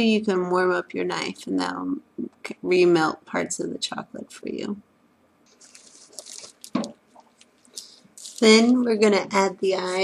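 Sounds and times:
plastic bag crinkling: 5.5 - 8.8.

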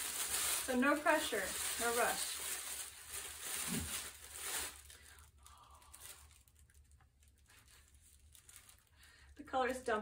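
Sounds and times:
tissue paper rustling: 0.0 - 9.1.

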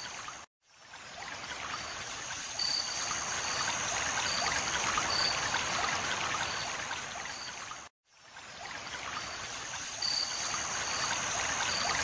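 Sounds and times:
trickling running water: 0.0 - 12.0.

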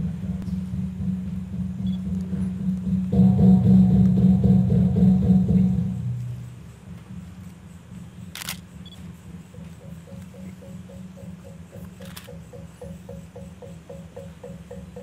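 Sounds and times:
large gongs ringing: 0.0 - 7.2
sharp click: 12.0 - 12.4.

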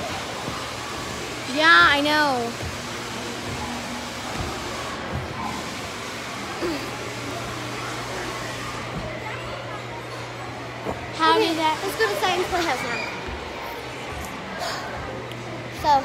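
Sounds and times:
indoor public hall din: 0.0 - 16.0.

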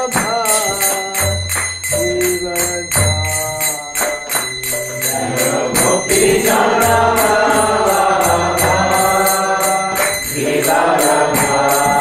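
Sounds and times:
man chanting: 0.0 - 10.2
hand cymbals struck: 0.0 - 12.0.

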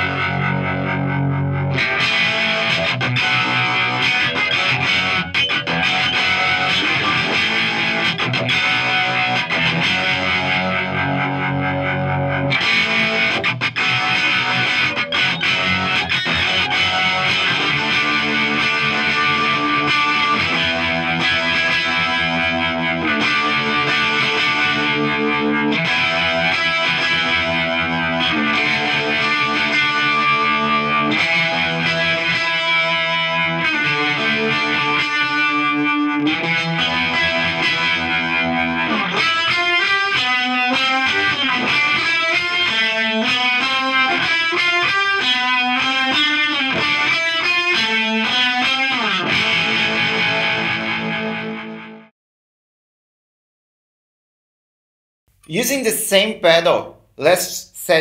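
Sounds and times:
overdriven electric guitar strumming: 0.0 - 52.0.

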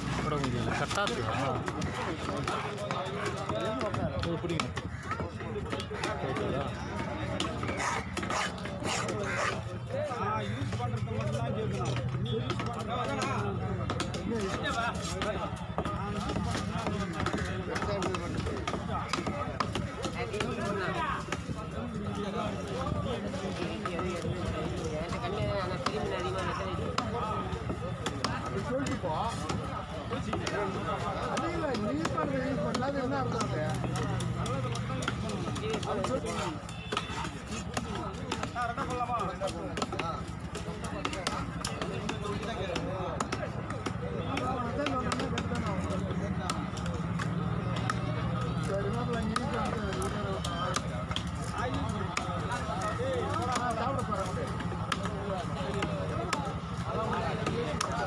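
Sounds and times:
murmur of voices: 0.0 - 58.0.

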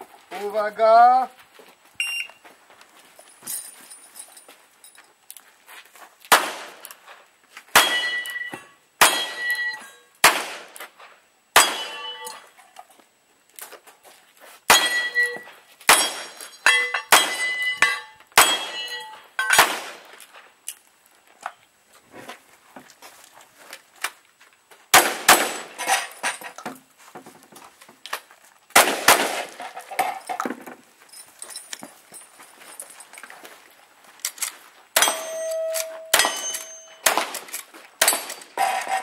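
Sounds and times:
steel plate ringing clang: 7.8 - 10.0, 11.6 - 12.5, 14.7 - 19.6, 35.0 - 37.2.

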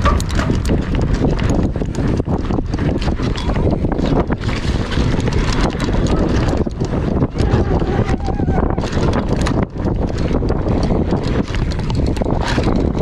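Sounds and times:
bike rattling and knocking: 0.0 - 13.0
tyres crunching over dirt: 0.0 - 13.0
wind on microphone: 0.0 - 13.0.

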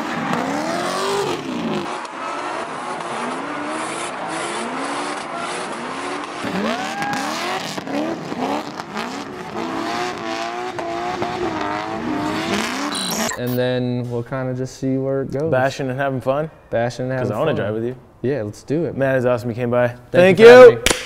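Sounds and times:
car engines revving: 0.0 - 13.6
tyres squealing: 12.7 - 13.6.

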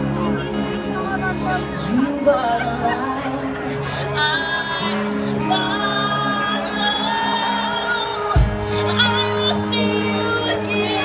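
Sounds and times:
crowd noise: 0.0 - 11.0
live band music: 0.0 - 11.0
woman singing into microphone: 1.9 - 11.0.

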